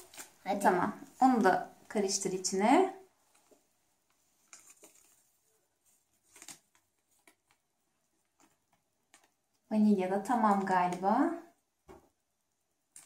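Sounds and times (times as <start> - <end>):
paper sachet rustling: 3.3 - 7.6.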